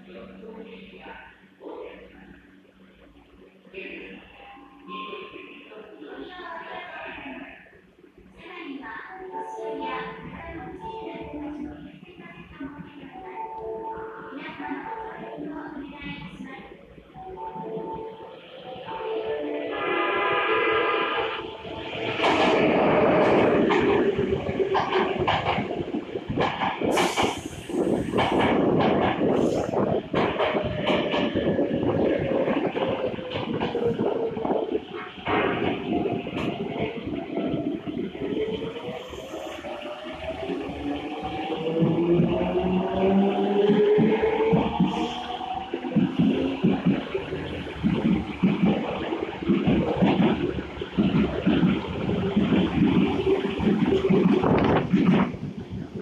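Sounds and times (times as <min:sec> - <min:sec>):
wheels clattering on rails: 0:22.0 - 0:37.8, 0:41.4 - 0:56.0.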